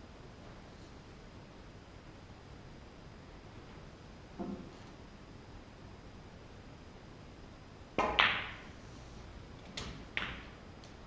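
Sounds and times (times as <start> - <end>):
cue tip striking ball: 4.4 - 4.7, 8.0 - 8.7, 10.0 - 10.6
snooker balls clicking: 8.0 - 8.8, 9.6 - 11.0.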